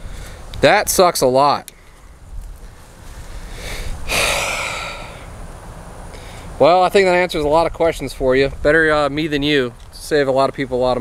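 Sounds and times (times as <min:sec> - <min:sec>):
man sighing: 0:03.6 - 0:05.3.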